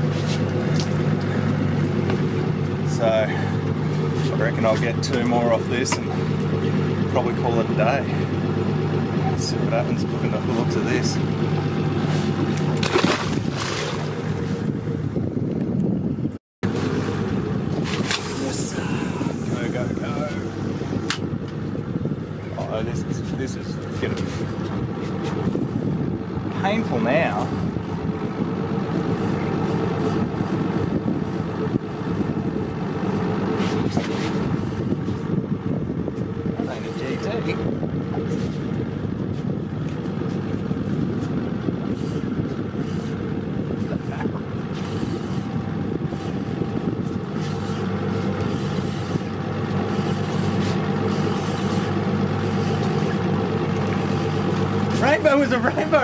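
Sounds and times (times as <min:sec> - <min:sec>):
boat engine humming: 0:00.0 - 0:56.0.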